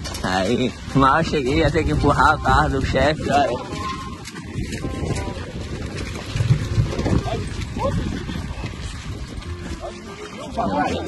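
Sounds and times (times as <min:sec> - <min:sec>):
tyres rolling over cobblestones: 0:00.0 - 0:10.6.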